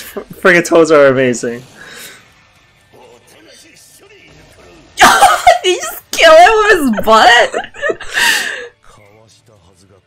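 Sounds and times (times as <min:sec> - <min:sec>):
faint dialogue: 0:00.0 - 0:10.0
person gasping laughter: 0:07.8 - 0:08.7.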